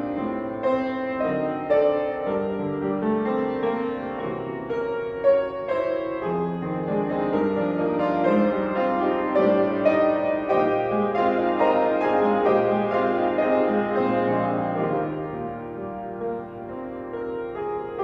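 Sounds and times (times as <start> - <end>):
slow gentle piano piece: 0.0 - 18.0.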